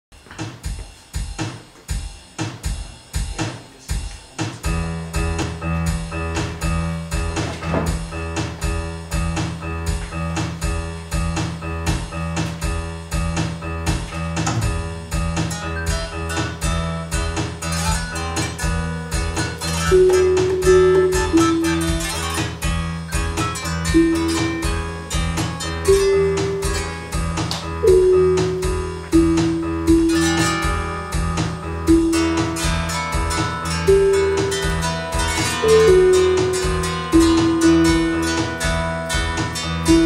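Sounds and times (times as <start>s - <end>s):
synthesised drum beat: 0.2s - 40.0s
sustained chord tones: 15.6s - 40.0s.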